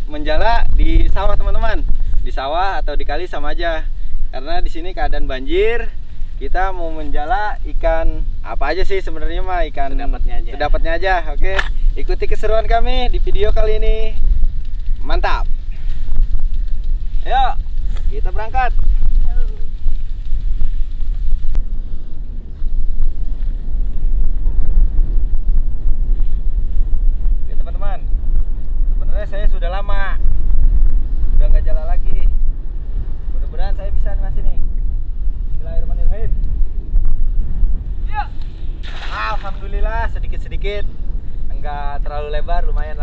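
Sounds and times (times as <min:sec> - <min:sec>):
wind rumbling on microphone: 0:00.0 - 0:43.0.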